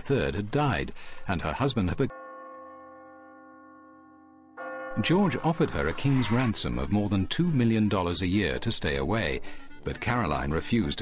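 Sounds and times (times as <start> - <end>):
church bell tolling: 2.0 - 9.1.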